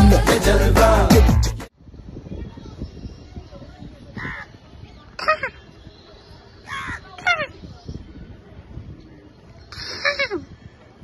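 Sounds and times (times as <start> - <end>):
crow cawing: 4.2 - 4.5, 6.7 - 7.0.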